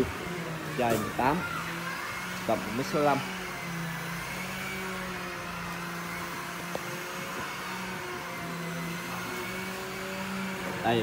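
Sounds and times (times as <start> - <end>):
motor humming: 0.0 - 11.0.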